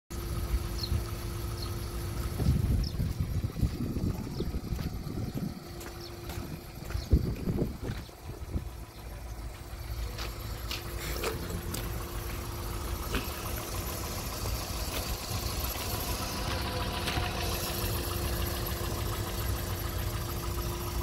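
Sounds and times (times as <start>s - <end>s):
car engine idling: 0.1s - 21.0s
wind buffeting microphone: 2.2s - 9.0s.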